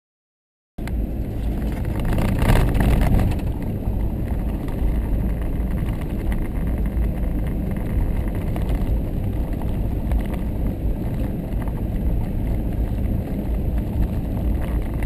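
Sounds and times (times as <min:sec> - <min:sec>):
tyres and engine rumble: 0:00.8 - 0:15.0.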